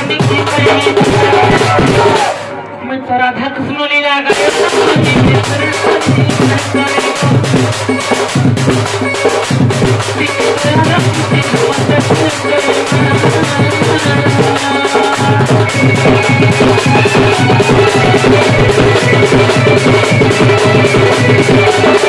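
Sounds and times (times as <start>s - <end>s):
barrel drum beaten fast: 0.0s - 2.5s, 4.3s - 22.0s.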